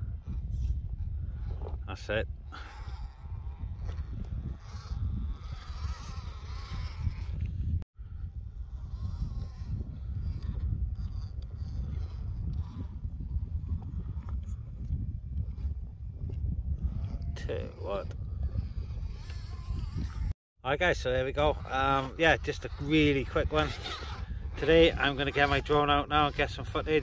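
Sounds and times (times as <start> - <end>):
wind rumbling on microphone: 0.0 - 27.0
electric motor whine: 2.6 - 15.8, 16.8 - 20.4, 21.2 - 27.0.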